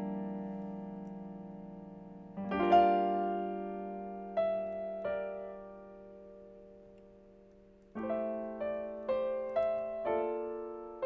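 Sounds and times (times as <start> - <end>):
slow piano chords: 0.0 - 11.0.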